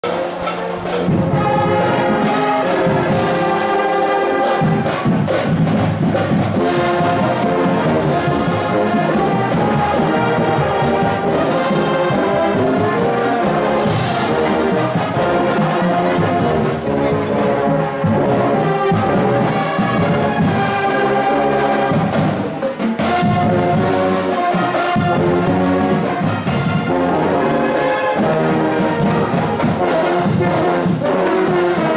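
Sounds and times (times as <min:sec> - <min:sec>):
marching band playing: 0:00.0 - 0:31.9
sharp percussion hits: 0:00.0 - 0:31.9.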